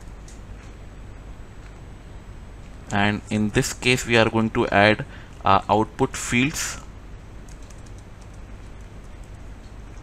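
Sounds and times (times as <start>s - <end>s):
low hum and hiss: 0.0s - 10.0s
soft keyboard keystrokes: 7.4s - 10.0s.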